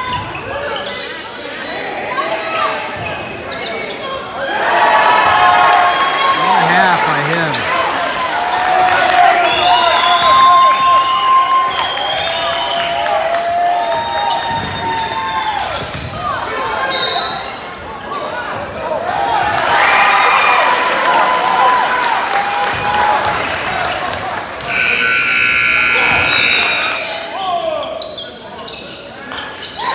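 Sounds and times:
voices echoing in a gym: 0.0s - 11.8s, 23.0s - 29.9s.

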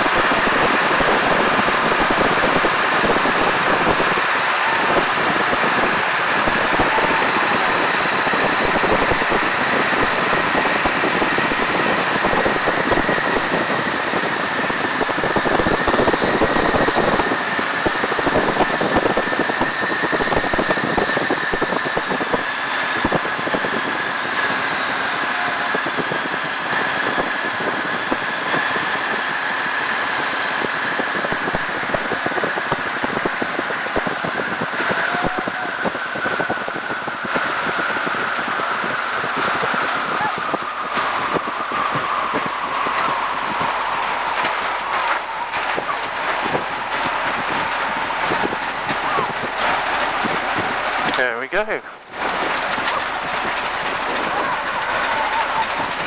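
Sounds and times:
biplane engine running: 0.0s - 56.0s
rushing slipstream: 0.0s - 56.0s
steady whine: 0.0s - 56.0s.

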